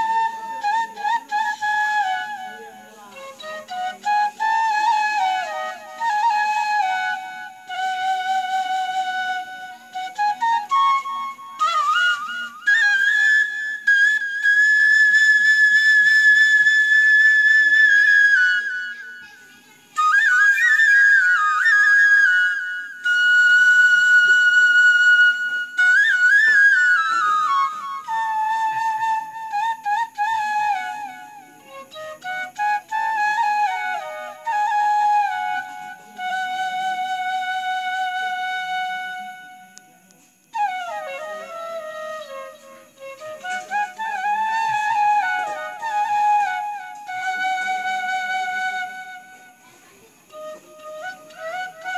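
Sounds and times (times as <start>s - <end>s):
flute melody: 0.0s - 51.9s.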